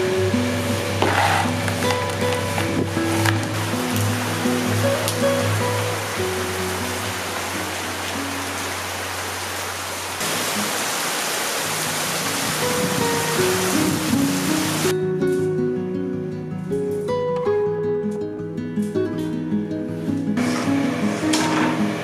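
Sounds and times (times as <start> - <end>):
background music: 0.0 - 9.4
heavy rain on bamboo: 0.0 - 14.9.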